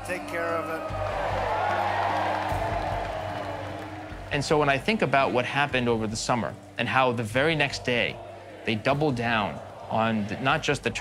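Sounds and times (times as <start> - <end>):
crowd cheering and applauding: 0.0 - 5.7
low sustained background music: 0.0 - 11.0.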